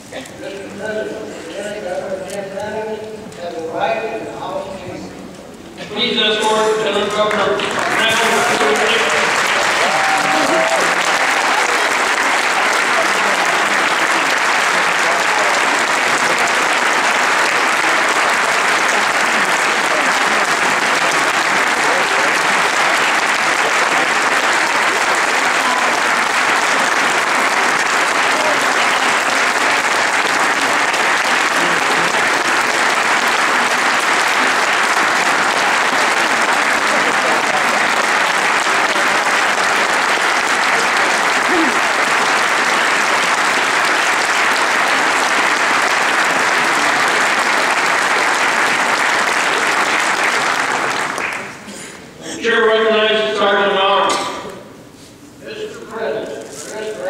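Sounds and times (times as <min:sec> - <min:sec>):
audience clapping: 0:05.9 - 0:52.0.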